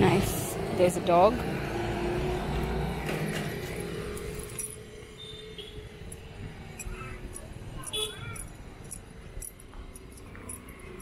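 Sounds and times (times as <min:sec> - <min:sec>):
motorcycle engine moving away: 0:00.0 - 0:11.0.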